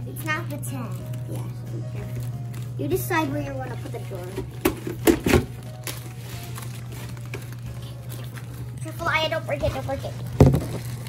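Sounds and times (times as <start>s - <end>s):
plastic wrap taps and rustles: 3.6s - 8.7s, 9.5s - 11.0s.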